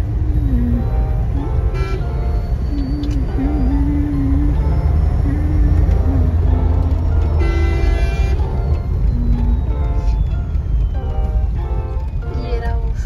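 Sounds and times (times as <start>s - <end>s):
background music: 0.0s - 13.0s
car cabin road rumble: 0.0s - 13.0s
vehicle horn: 1.6s - 3.2s, 7.2s - 10.3s.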